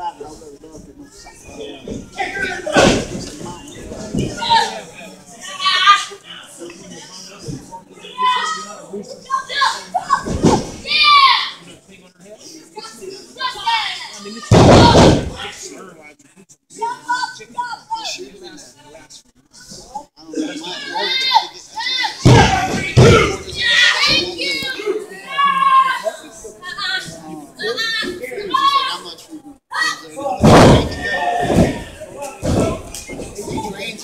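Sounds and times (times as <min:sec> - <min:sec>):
crowd voices: 0:00.0 - 0:34.0
body slammed onto ring mat: 0:14.5 - 0:15.4, 0:30.4 - 0:31.8.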